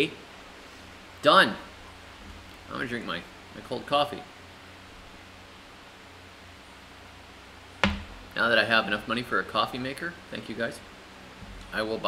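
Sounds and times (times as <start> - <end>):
faint room hiss: 0.0 - 12.0
glass set down on table: 7.8 - 8.2.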